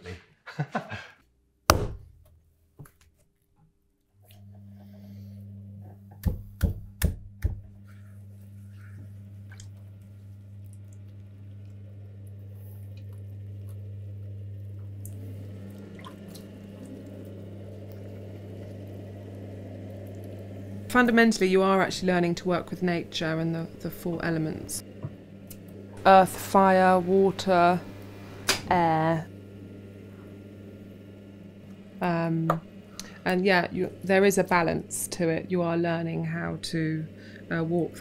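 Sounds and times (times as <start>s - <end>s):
potter's wheel humming: 4.2s - 38.0s.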